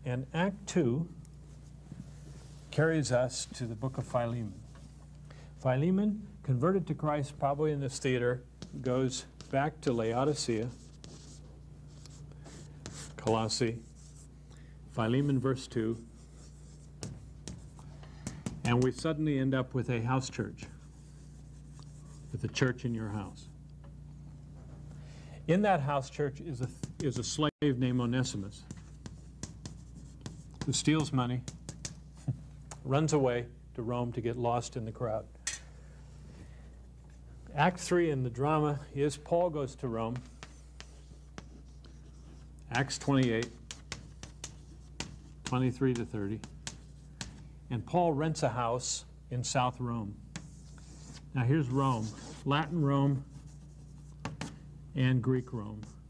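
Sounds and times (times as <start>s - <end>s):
steady low hum: 0.0s - 56.0s
chalk tapping and scraping: 8.6s - 14.3s, 15.2s - 19.2s, 26.4s - 32.5s, 39.2s - 47.6s, 50.2s - 54.7s, 55.4s - 56.0s.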